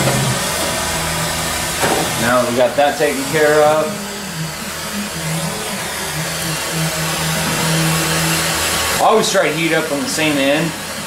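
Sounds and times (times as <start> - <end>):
gas torch flame hissing: 0.0 - 11.0.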